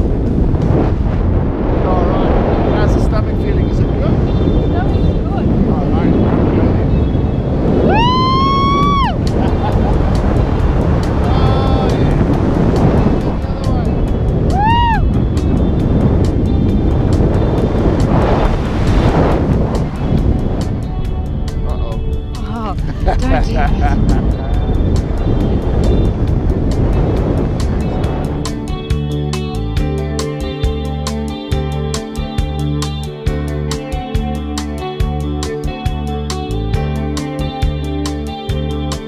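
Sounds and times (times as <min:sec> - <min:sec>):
wind rushing over microphone: 0:00.0 - 0:39.0
person whooping: 0:07.9 - 0:09.2, 0:14.5 - 0:15.1
background music with ticking beat: 0:15.2 - 0:39.0.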